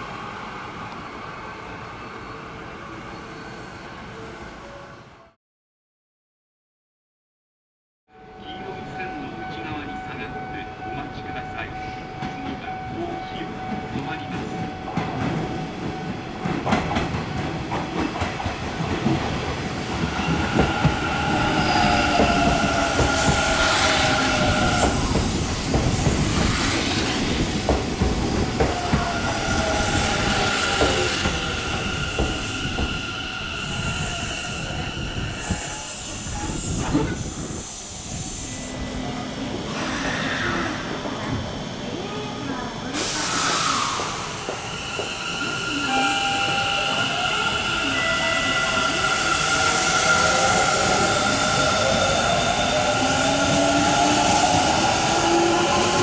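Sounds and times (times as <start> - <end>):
wheels rumbling on rail: 11.8 - 56.0.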